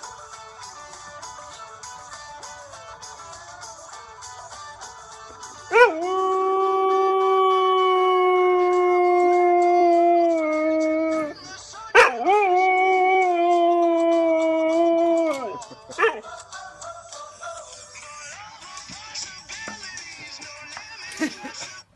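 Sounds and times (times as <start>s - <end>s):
music: 0.0s - 21.9s
dog howling: 5.7s - 16.3s.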